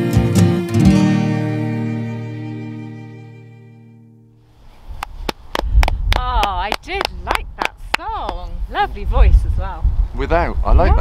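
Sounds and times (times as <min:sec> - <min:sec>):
acoustic song final chord: 0:00.0 - 0:03.0
wind rumble on microphone: 0:04.5 - 0:11.0
hand claps: 0:05.0 - 0:08.5.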